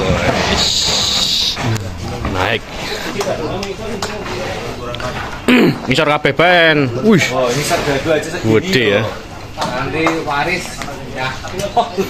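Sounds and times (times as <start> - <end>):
men talking indistinctly: 0.0 - 12.0.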